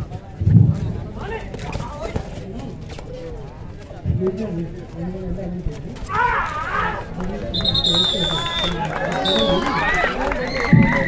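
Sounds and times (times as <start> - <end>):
voices calling out: 6.0 - 11.0.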